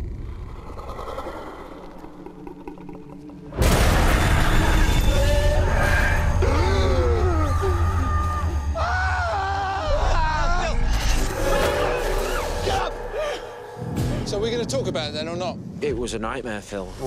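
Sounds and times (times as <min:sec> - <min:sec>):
deep rumbling drone: 0:00.0 - 0:16.4
wailing cries and screams: 0:05.0 - 0:13.8.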